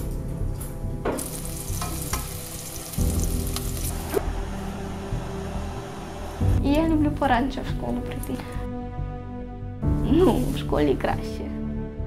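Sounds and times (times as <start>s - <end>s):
background music: 0.0s - 12.0s
food sizzling in a pan: 1.1s - 6.5s.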